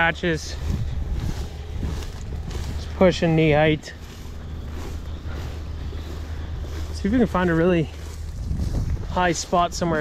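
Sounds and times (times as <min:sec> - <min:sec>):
crop rustling: 0:00.0 - 0:10.0
wind rumble on microphone: 0:00.0 - 0:10.0.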